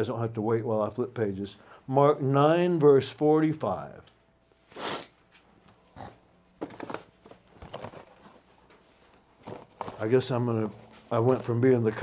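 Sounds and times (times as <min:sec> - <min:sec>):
sniffing: 0:04.7 - 0:05.2, 0:05.9 - 0:06.2.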